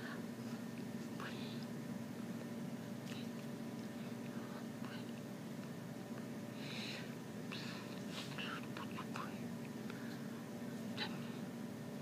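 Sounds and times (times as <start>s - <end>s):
low room hum: 0.0s - 12.0s
woman whispering mouth sounds: 8.3s - 9.4s.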